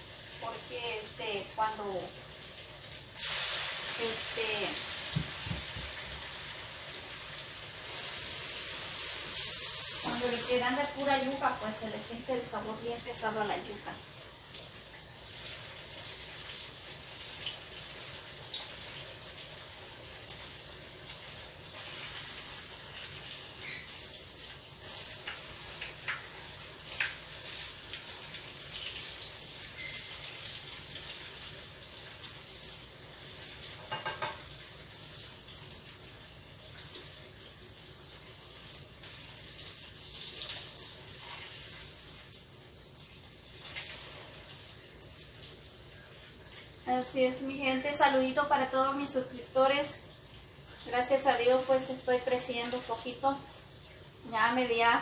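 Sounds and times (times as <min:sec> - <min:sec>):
fritters sizzling in hot oil: 0:00.0 - 0:55.0
small crackles of oil: 0:21.1 - 0:32.4, 0:43.4 - 0:46.9.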